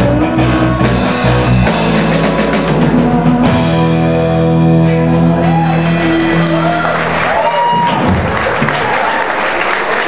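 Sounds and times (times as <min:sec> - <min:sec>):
band low note: 0:00.0 - 0:07.5
audience applauding: 0:05.6 - 0:10.0.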